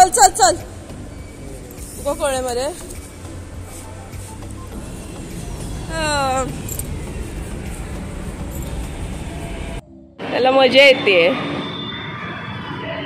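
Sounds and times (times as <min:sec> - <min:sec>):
metro station rumble: 0:00.0 - 0:13.0.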